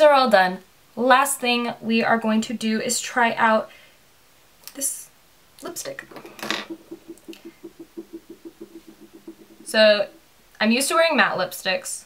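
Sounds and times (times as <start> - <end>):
faint rapid ticking: 6.0 - 10.3.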